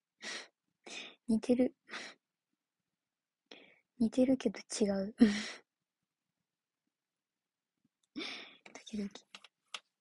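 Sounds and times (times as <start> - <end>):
young woman speaking: 1.3 - 1.8, 4.0 - 5.5.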